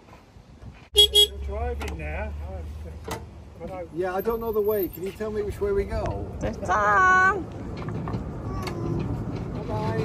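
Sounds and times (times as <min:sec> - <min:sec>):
locomotive horn toots: 0:01.0 - 0:01.4.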